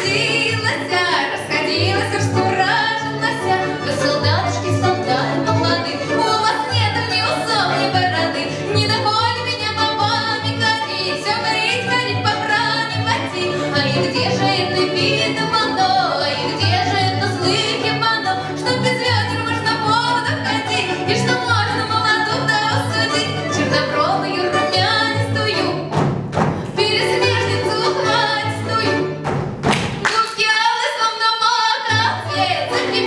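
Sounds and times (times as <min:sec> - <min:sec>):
woman singing: 0:00.0 - 0:26.0, 0:26.6 - 0:29.2, 0:30.0 - 0:33.0
plucked strings and accordion folk music: 0:00.0 - 0:33.0.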